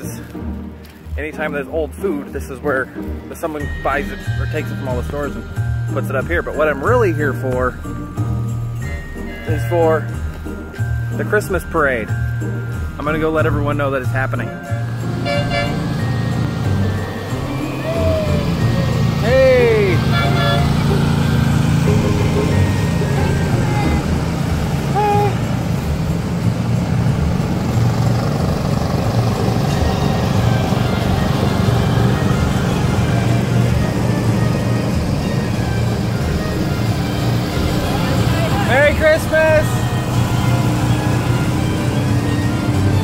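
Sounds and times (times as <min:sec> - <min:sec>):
low engine rumble: 0:00.0 - 0:43.0
music: 0:00.0 - 0:43.0
swooping pitched call: 0:17.2 - 0:21.5
voices: 0:17.2 - 0:25.5, 0:37.4 - 0:41.2.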